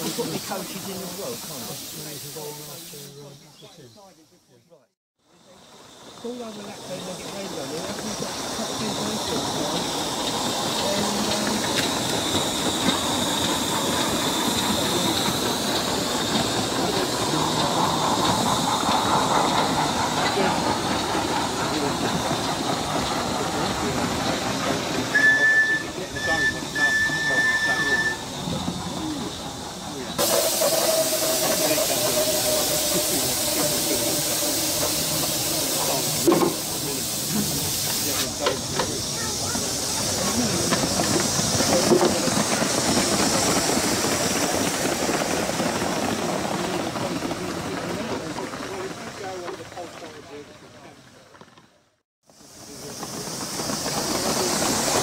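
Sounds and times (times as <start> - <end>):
sharp rush of steam: 0.0 - 4.2, 5.2 - 51.0, 52.2 - 55.0
model steam locomotive hissing: 0.0 - 4.6, 5.2 - 51.5, 52.2 - 55.0
high whistle toots: 25.1 - 28.4.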